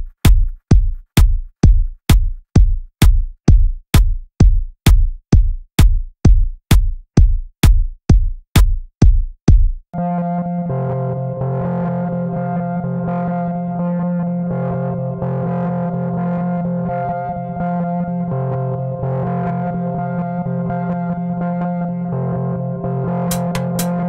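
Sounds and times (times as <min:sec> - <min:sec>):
distorted electronic chords: 0:10.0 - 0:24.0
electronic bass line: 0:10.0 - 0:24.0.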